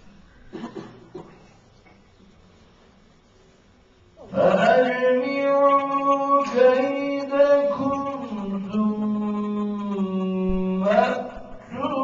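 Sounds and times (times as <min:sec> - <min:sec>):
man chanting melodic recitation: 0:04.2 - 0:12.0.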